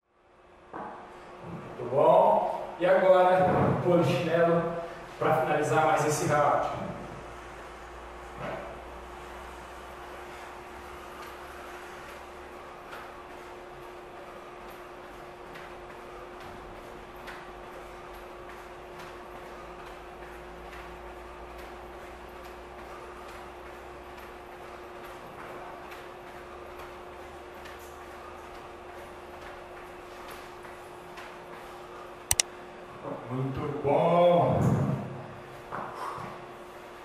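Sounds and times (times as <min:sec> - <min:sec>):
steady hum: 0:00.1 - 0:35.8.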